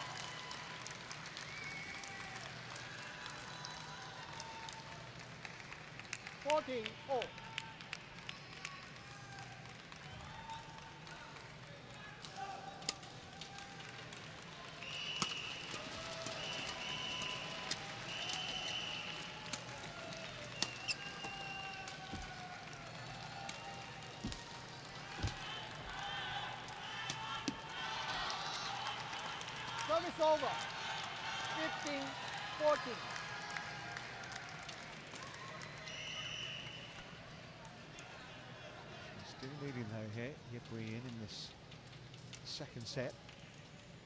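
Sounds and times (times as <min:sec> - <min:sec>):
court shoes squeaking: 0:20.4 - 0:22.4, 0:24.2 - 0:26.0.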